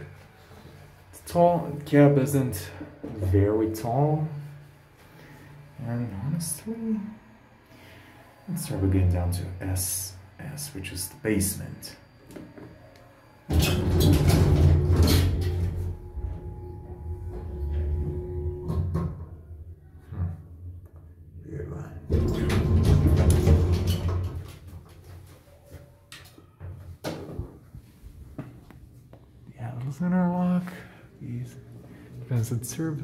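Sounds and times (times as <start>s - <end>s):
elevator motor hum and whine: 0.0s - 24.6s
elevator stopping and doors opening: 12.7s - 19.6s, 22.1s - 24.8s
elevator lurching start: 22.1s - 24.3s.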